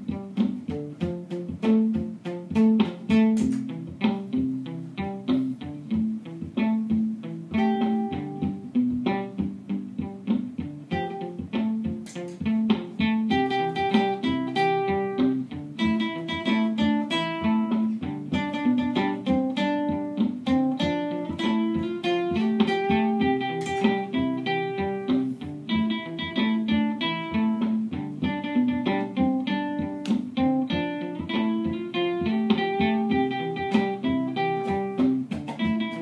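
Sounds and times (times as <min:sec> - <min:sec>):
looped bass notes: 0:00.0 - 0:36.0
plucked and strummed guitar: 0:00.0 - 0:36.0.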